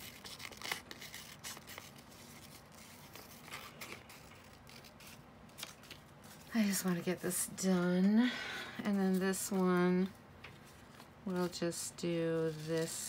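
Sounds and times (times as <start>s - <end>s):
paper rustling and crinkling: 0.0s - 7.6s, 8.8s - 13.0s.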